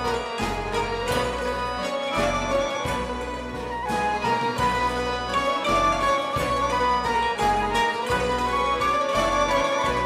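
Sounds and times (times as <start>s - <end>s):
instrumental band music: 0.0s - 10.0s.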